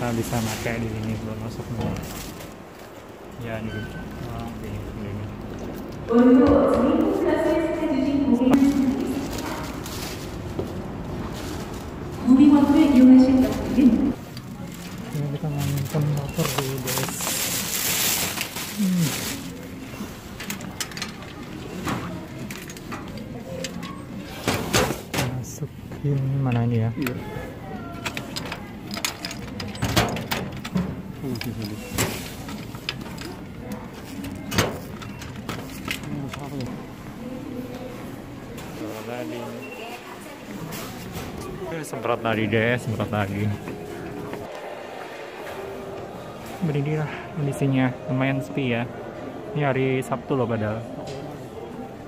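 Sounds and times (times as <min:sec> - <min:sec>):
supermarket room noise: 0:00.0 - 0:52.0
bag rustling: 0:07.0 - 0:20.8.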